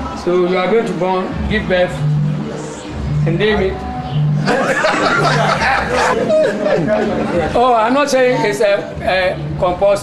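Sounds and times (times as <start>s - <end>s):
people laughing: 4.4s - 7.8s.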